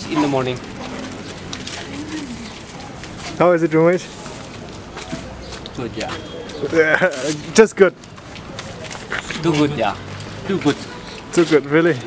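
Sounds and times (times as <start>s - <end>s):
faint street background: 0.0s - 12.0s
pigeon cooing: 1.8s - 2.6s.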